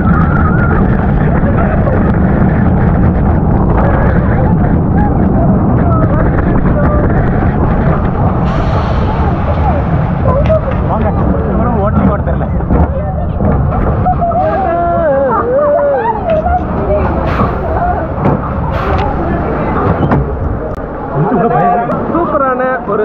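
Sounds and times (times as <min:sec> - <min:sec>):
wind noise: 0:00.0 - 0:22.1
roller coaster train rumbling: 0:00.0 - 0:23.0
voices calling out: 0:12.7 - 0:22.8.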